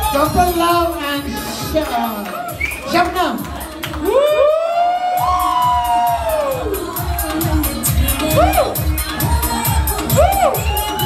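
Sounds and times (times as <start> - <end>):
dance music with steady beat: 0.0 - 11.0
crowd cheering woooo: 2.2 - 3.0, 3.9 - 11.0.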